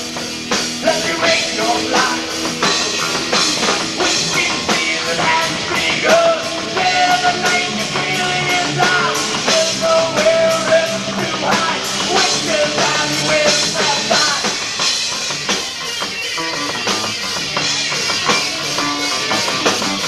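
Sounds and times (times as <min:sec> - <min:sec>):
live rock band playing: 0:00.0 - 0:20.0.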